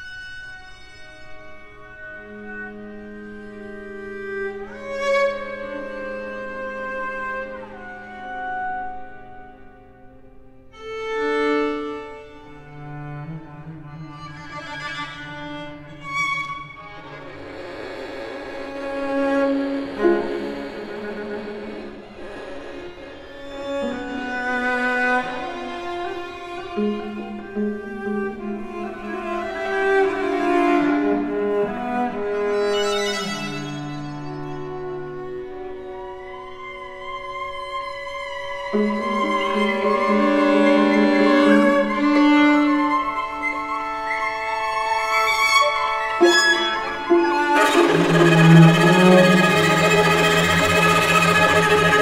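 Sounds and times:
string quartet long notes: 0.0 - 52.0.

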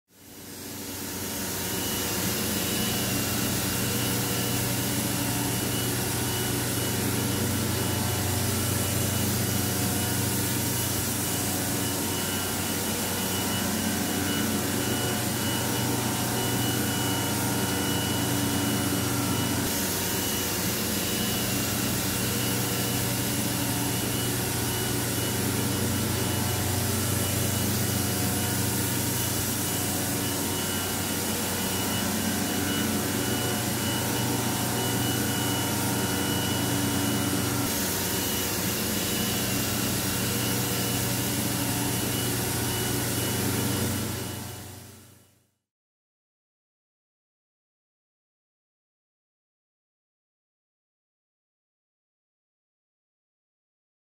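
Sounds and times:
machinery roar with high whine: 0.2 - 45.1.

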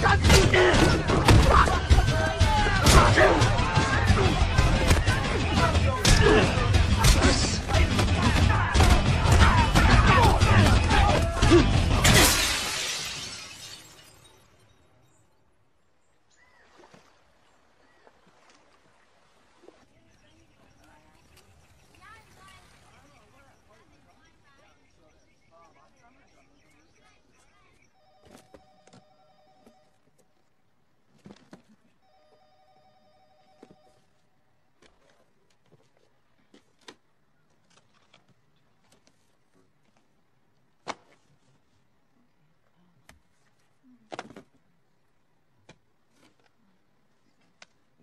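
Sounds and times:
glass breaking: 11.9 - 14.6
telephone ringing: 28.0 - 30.2, 32.0 - 34.2.

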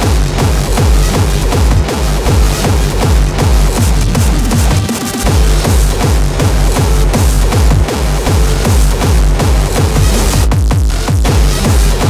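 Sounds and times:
heavy kick drum: 0.0 - 12.0
industrial hardcore electronic music: 0.0 - 12.0
noisy synth layers: 0.0 - 12.0.

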